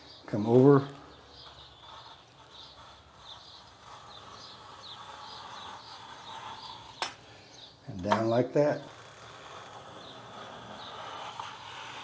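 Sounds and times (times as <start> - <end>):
small bird chirping: 0.0 - 7.8
hand plane scraping wood: 0.0 - 12.0.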